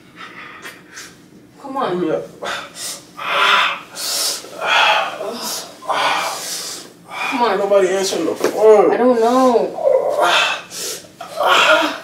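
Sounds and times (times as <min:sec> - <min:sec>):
person breathing hard: 0:02.4 - 0:07.5, 0:10.2 - 0:12.0.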